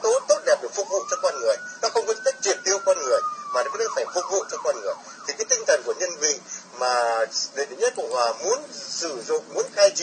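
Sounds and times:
emergency vehicle siren: 0.0 - 10.0
voices: 0.0 - 10.0.

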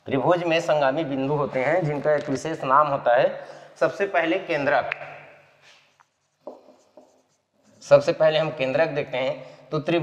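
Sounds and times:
marker writing on whiteboard: 4.9 - 8.0.

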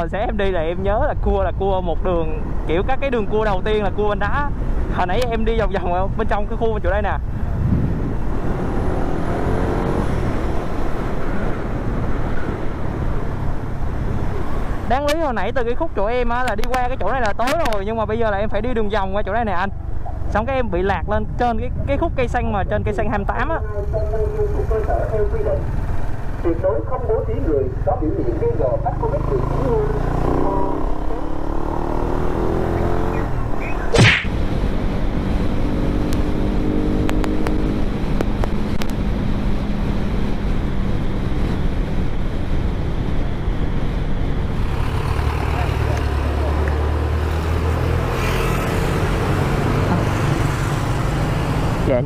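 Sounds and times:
road and wind noise: 0.0 - 52.0
brief sharp high sound: 33.9 - 34.3.

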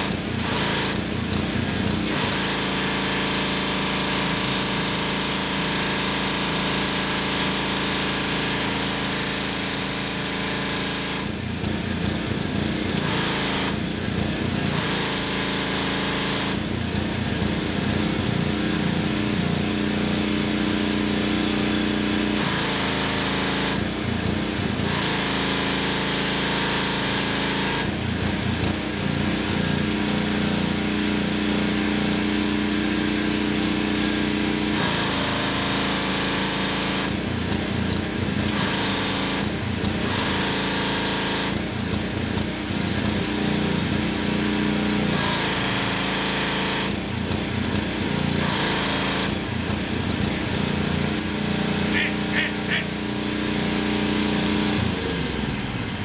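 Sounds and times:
pressure washer engine running: 0.0 - 56.0.

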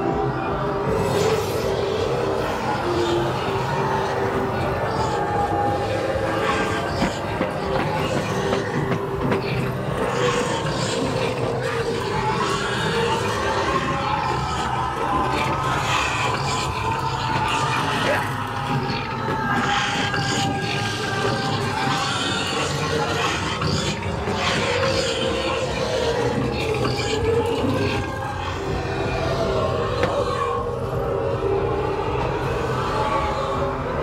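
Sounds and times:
droning soundtrack over speakers: 0.0 - 34.0.

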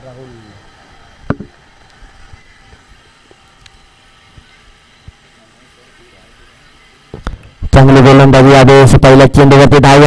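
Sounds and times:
open-air background noise: 0.0 - 10.0.

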